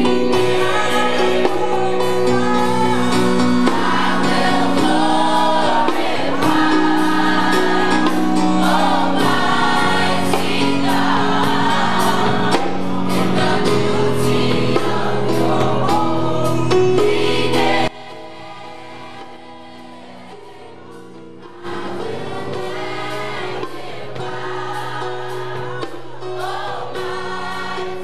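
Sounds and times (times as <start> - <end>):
gospel choir singing: 0.0 - 28.0.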